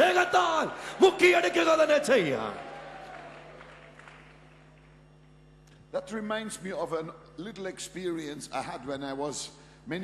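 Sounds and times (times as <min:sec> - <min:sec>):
amplified preacher voice echoing: 0:00.0 - 0:02.5
electrical hum: 0:00.0 - 0:10.0.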